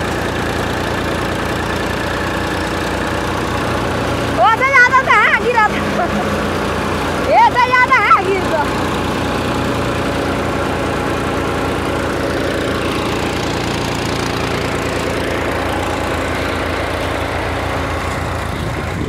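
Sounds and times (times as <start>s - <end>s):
thresher drum spinning: 0.0s - 19.0s
tractor diesel engine pulsing: 0.0s - 19.0s.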